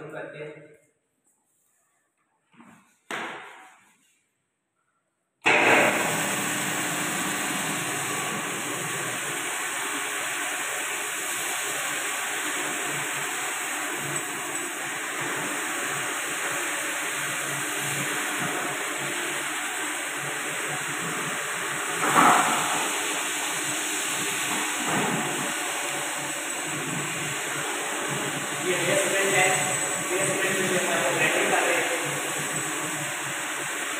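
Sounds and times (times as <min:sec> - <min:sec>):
floor grinding machine running: 0:05.4 - 0:33.9.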